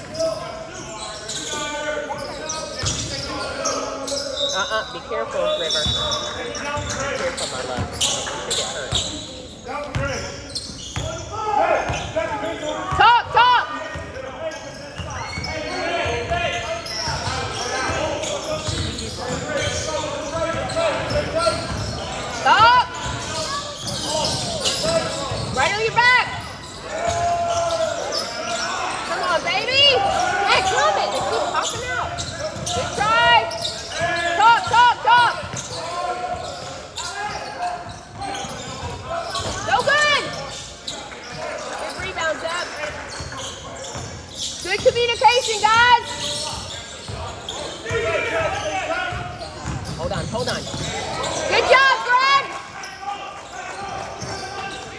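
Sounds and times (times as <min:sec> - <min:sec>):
sneaker squeaks: 0:00.0 - 0:13.1, 0:13.9 - 0:54.9
voices echoing in a hall: 0:00.0 - 0:54.9
basketball bouncing: 0:18.6 - 0:19.4, 0:49.1 - 0:51.0.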